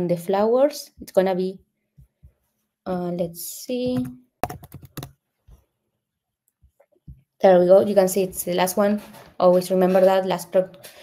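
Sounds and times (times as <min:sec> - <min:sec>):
computer keyboard typing: 0:03.9 - 0:05.2.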